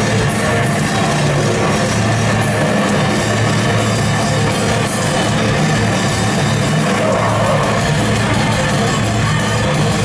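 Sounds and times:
distorted electric guitars and bass: 0.0s - 10.0s
drumming: 0.0s - 10.0s.

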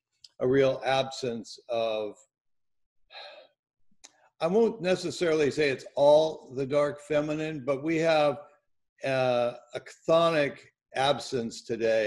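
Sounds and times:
person sighing: 3.2s - 3.5s.

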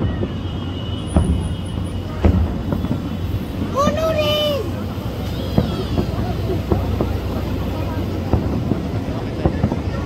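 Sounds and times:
fireworks booming: 0.0s - 10.0s
sharp firework bangs: 0.0s - 10.0s.

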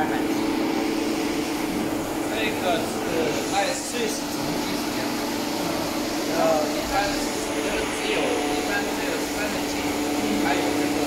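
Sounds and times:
steady machine hum: 0.0s - 11.0s.

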